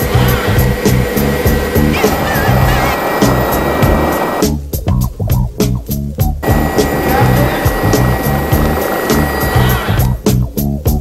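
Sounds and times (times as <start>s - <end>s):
music with a steady beat: 0.0s - 11.0s
helicopter engine and rotor: 0.2s - 4.4s, 6.4s - 10.0s.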